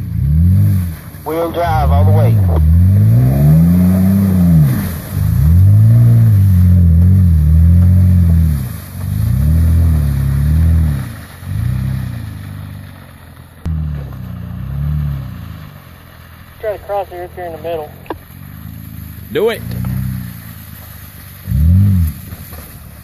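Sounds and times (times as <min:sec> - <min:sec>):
truck engine revving in mud: 0:00.0 - 0:23.0.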